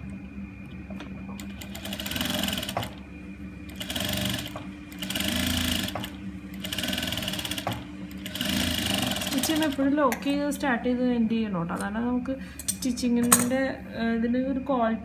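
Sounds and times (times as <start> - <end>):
motor hum: 0.0 - 12.6
sewing machine stitching: 1.4 - 3.0, 3.7 - 9.8.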